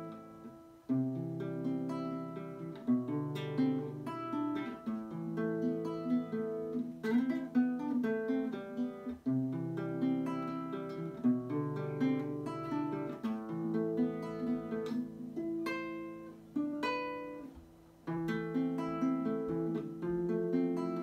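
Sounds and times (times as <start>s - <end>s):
classical guitar fingerpicking: 0.0s - 21.0s.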